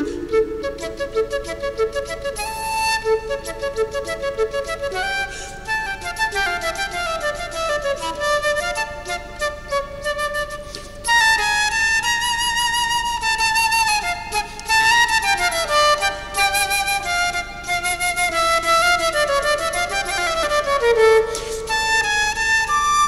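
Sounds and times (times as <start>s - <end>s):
solo flute fast melody: 0.0s - 23.0s.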